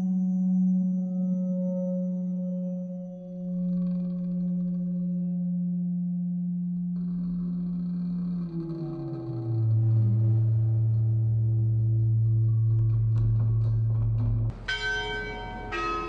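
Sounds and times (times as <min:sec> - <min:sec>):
dark low drone: 0:00.0 - 0:16.0.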